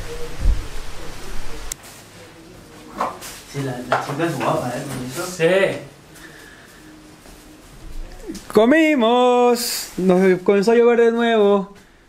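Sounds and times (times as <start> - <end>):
rain falling: 0.0 - 1.8.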